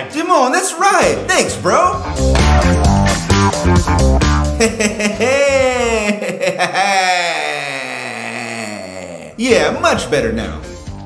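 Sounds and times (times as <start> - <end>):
man's drawn-out laughing cry: 4.6 - 9.4.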